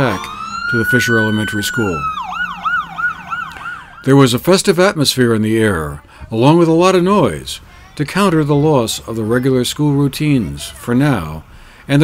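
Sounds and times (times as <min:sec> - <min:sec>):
faint steady siren tone: 0:00.0 - 0:04.2
emergency siren wailing and yelping: 0:00.0 - 0:04.3.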